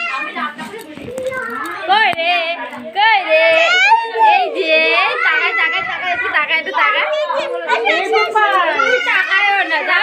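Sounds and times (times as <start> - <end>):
young children calling and chattering: 0.0 - 10.0.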